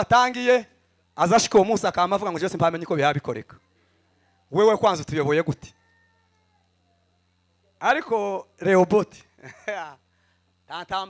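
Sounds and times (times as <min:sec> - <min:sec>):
man speaking into a microphone: 0:00.0 - 0:03.6, 0:04.5 - 0:05.7, 0:07.8 - 0:09.3, 0:10.7 - 0:11.0
faint low hum: 0:00.0 - 0:11.0.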